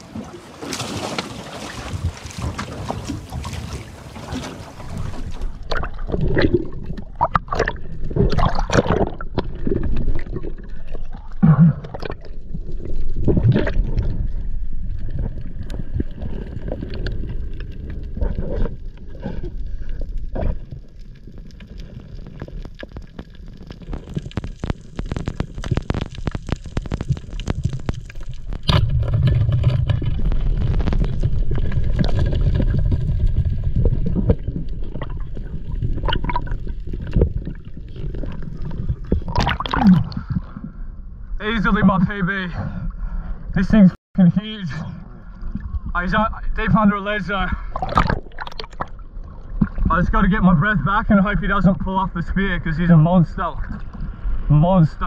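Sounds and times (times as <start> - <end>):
water splashing and gurgling: 0.0 - 40.9, 47.3 - 50.2.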